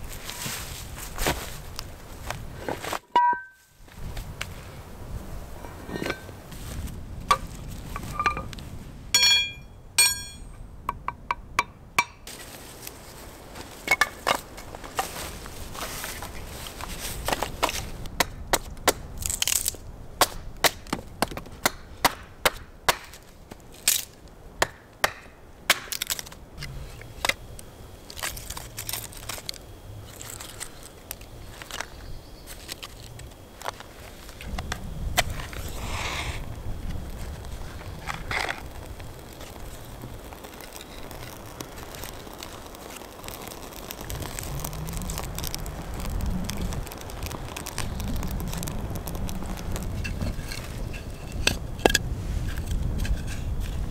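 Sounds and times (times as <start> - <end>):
short ringing taps: 9.2 - 10.6
dry wood cracking: 12.2 - 53.9.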